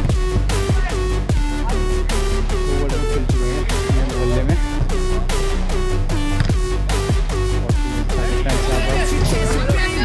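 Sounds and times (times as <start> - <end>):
electronic dance music: 0.0 - 10.0
sliding bass notes: 0.0 - 10.0.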